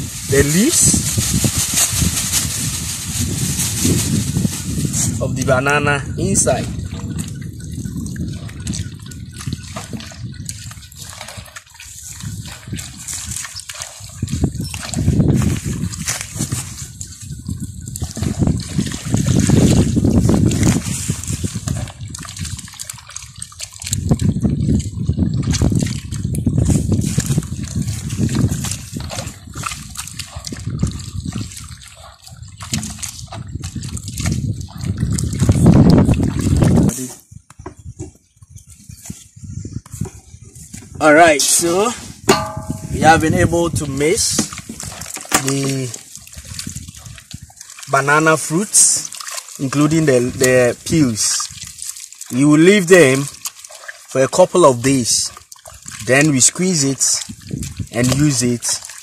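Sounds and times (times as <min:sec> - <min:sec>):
hands mashing fruit in water: 0:00.0 - 0:37.3, 0:41.0 - 0:59.0
water sloshing: 0:00.0 - 0:37.3, 0:40.2 - 0:59.0.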